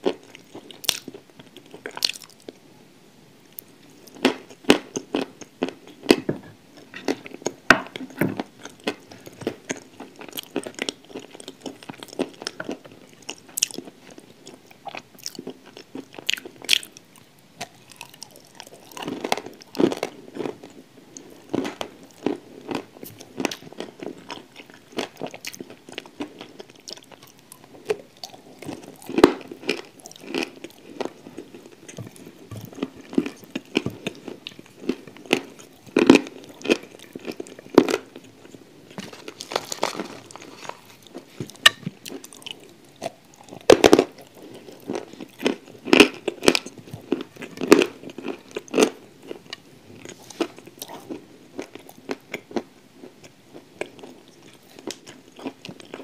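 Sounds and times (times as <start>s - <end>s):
close chewing crunches: 17.6s - 56.0s.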